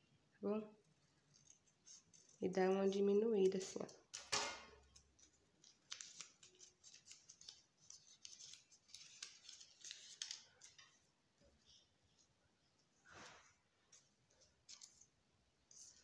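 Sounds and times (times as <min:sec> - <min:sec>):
paper crackling and rustling: 0:00.9 - 0:04.2, 0:04.8 - 0:11.2, 0:13.2 - 0:16.0.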